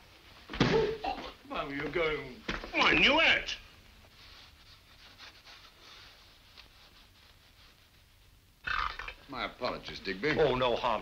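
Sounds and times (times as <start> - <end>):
film soundtrack hum and hiss: 0.0 - 11.0
soft rustles: 1.6 - 8.6.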